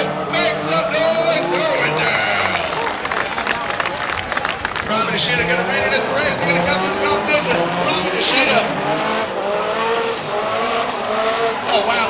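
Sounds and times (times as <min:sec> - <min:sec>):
voices talking: 0:00.0 - 0:09.2
grandstand crowd noise: 0:00.0 - 0:12.0.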